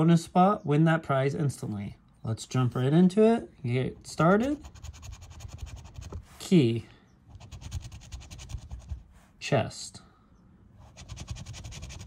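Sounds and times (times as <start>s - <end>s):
lottery ticket being scratched: 4.0s - 6.3s, 7.3s - 8.9s, 10.9s - 12.0s.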